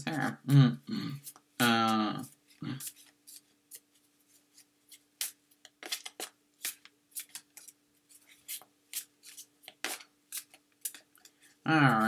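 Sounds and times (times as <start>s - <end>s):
cards being shuffled: 1.2s - 12.0s.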